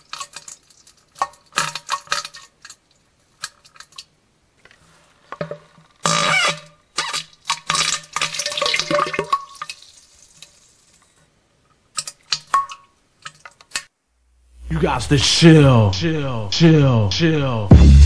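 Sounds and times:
wet splashy stirring: 0.0 - 4.1, 7.1 - 10.9.

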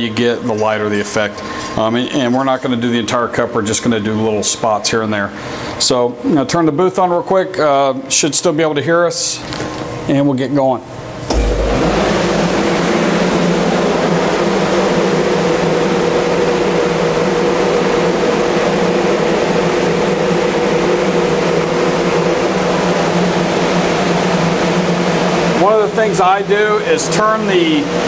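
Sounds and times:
exhaust fan rumbling and rushing air: 0.0 - 28.0.

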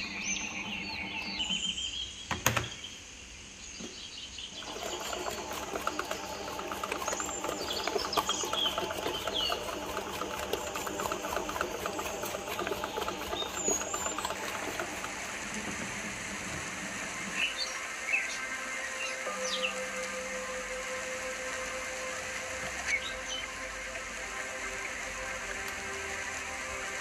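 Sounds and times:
bread maker kneading rattle: 0.0 - 1.8, 4.6 - 17.8.

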